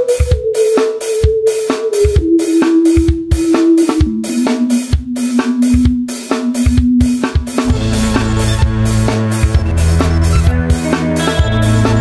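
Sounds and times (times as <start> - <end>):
drum kit kick and snare: 0.0 - 12.0
instrumental rock music: 0.0 - 12.0.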